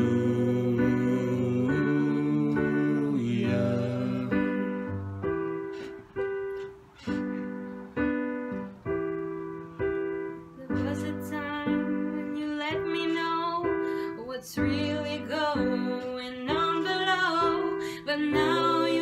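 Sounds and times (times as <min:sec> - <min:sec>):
person singing softly: 0:00.0 - 0:05.1, 0:10.6 - 0:19.0
slow piano chords: 0:00.0 - 0:19.0.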